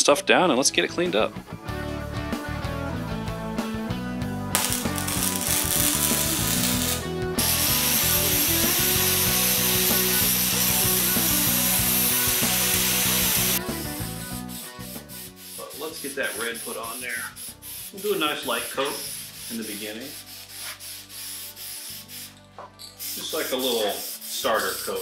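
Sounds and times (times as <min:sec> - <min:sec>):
background music with beat: 0:01.5 - 0:15.6
welder crackling on steel: 0:04.6 - 0:13.6
angle grinder whining: 0:04.6 - 0:14.0.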